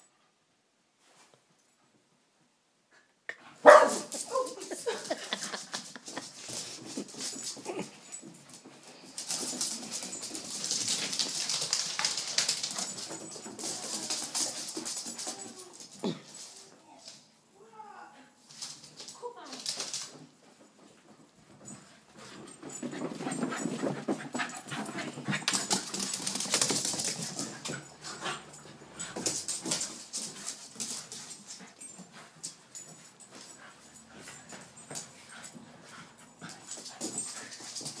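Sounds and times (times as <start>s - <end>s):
dogs playing and scuffling: 3.4s - 17.5s, 18.4s - 38.0s
paws clicking on laminate floor: 3.6s - 17.2s, 18.5s - 38.0s.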